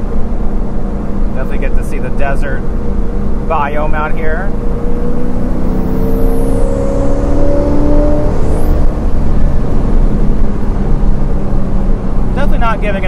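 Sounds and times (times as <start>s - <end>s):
engine accelerating: 0.0s - 13.0s.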